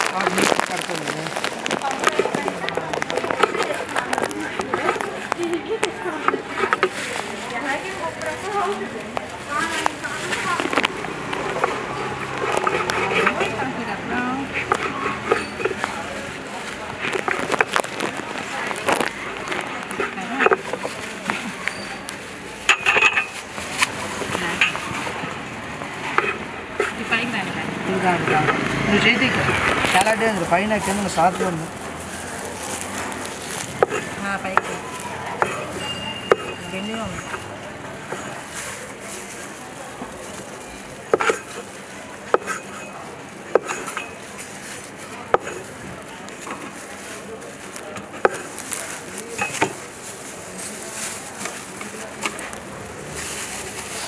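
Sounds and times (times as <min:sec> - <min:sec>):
voices chattering: 0:00.0 - 0:54.0.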